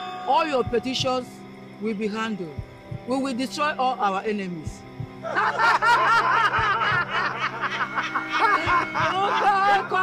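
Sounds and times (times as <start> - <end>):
background music with low drone: 0.0 - 10.0
person laughing: 5.2 - 10.0.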